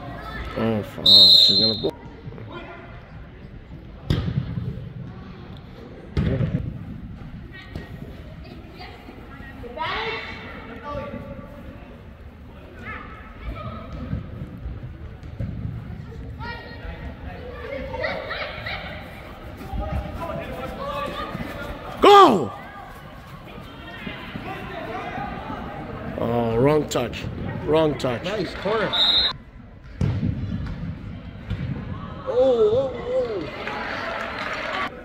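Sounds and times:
soccer ball kick thuds: 4.0s - 4.7s, 29.8s - 31.9s
people calling out in a hall: 21.9s - 22.9s.

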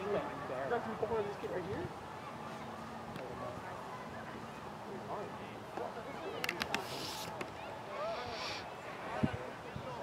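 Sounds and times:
distant shouts and chatter: 0.0s - 10.0s.

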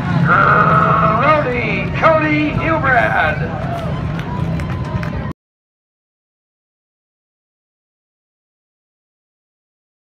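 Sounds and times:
low rumble: 0.0s - 5.3s
announcer over loudspeaker: 0.1s - 4.1s.

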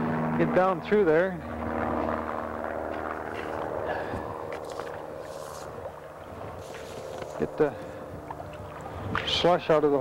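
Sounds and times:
faint scrapes: 4.6s - 5.8s, 6.6s - 7.4s.

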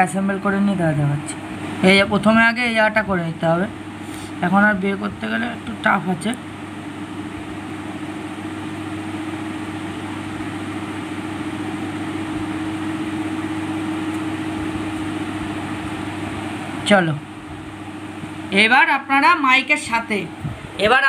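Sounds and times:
steady electrical hum: 0.0s - 21.0s.

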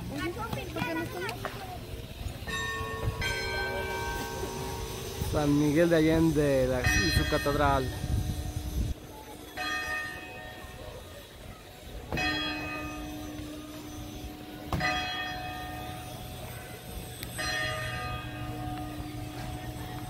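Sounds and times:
church bell tolling: 2.4s - 6.0s, 6.6s - 20.0s.

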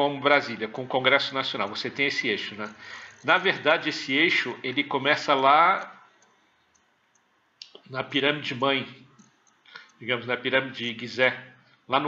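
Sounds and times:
man speaking: 0.0s - 6.1s, 7.6s - 9.1s, 9.9s - 12.0s
faint clicks: 1.6s - 3.5s, 5.7s - 7.9s, 9.0s - 10.0s.

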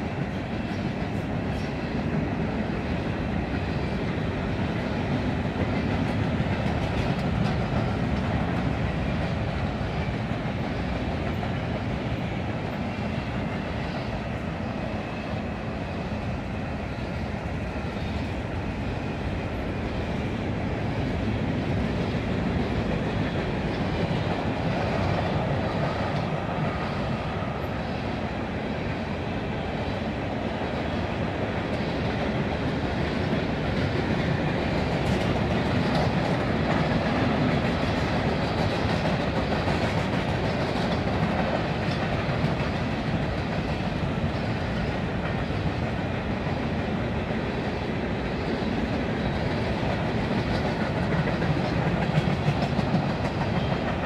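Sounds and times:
freight train rolling past: 0.0s - 54.0s
wheels clicking over rail joints: 4.8s - 13.6s, 31.7s - 46.6s, 49.4s - 54.0s.

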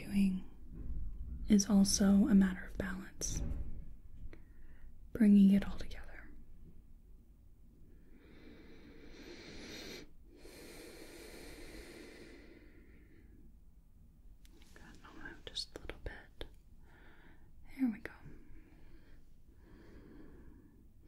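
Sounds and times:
soft breaths: 4.2s - 5.1s, 7.8s - 13.6s, 14.4s - 21.0s.

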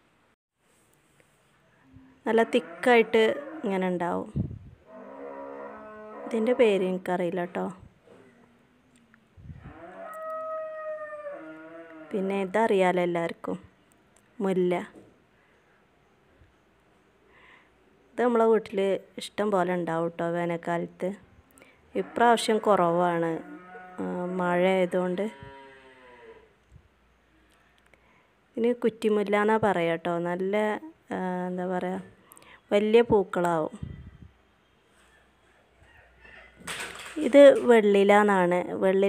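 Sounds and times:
long animal call: 7.5s - 12.2s.

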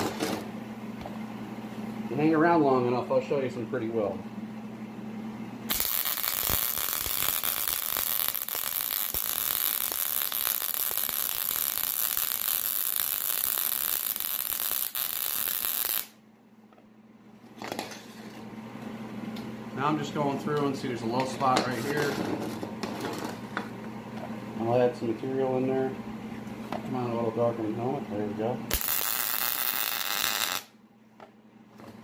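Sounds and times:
welder arc buzzing crackle: 0.0s - 1.1s, 5.7s - 16.2s, 19.8s - 23.7s, 28.7s - 30.8s.

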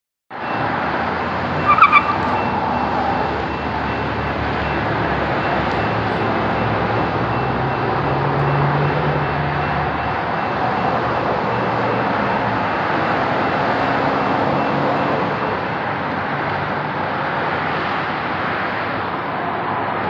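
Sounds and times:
road traffic rushing: 0.3s - 20.0s.

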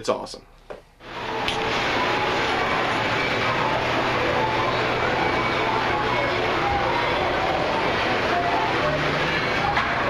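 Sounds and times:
amusement park background noise: 1.0s - 10.0s.

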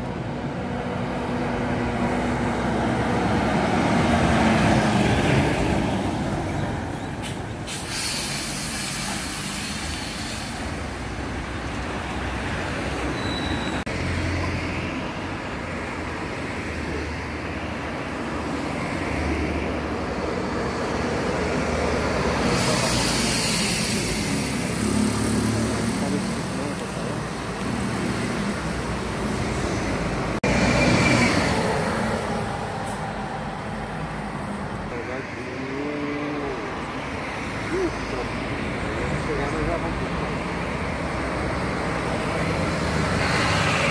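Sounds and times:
bus diesel engines: 0.0s - 43.9s
street traffic: 0.0s - 43.9s
air hiss: 7.2s - 10.9s, 22.4s - 24.9s.

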